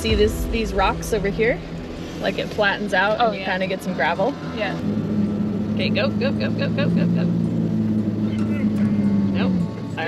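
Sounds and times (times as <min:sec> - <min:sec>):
truck engine revving: 0:00.0 - 0:10.0.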